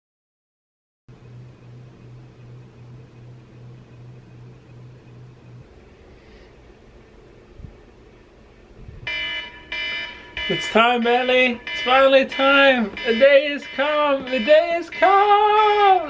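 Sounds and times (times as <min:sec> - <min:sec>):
faint pulsing hum: 0:01.1 - 0:16.0
smartphone alarm ringing: 0:09.1 - 0:16.0.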